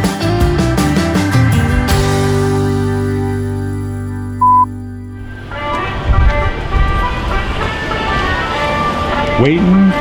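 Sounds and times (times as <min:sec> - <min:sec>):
background music: 0:00.0 - 0:10.0
street traffic rumble: 0:05.0 - 0:10.0.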